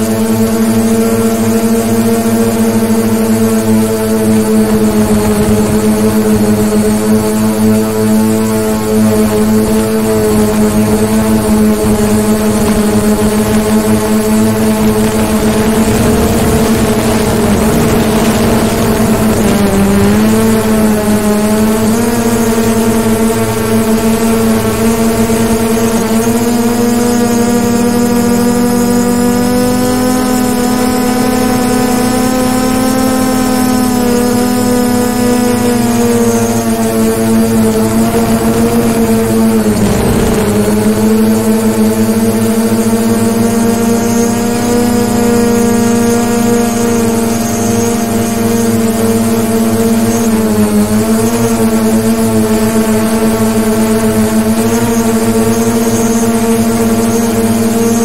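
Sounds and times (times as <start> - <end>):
drone propellers buzzing: 0.0 - 58.0.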